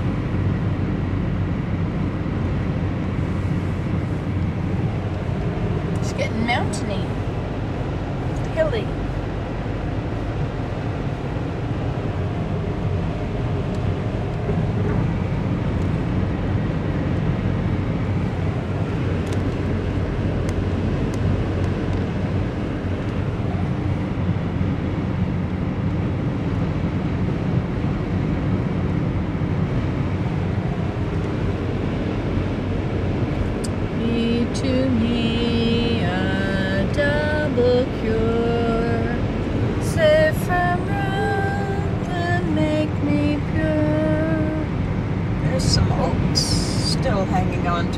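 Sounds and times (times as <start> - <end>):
car road and engine rumble: 0.0 - 47.9.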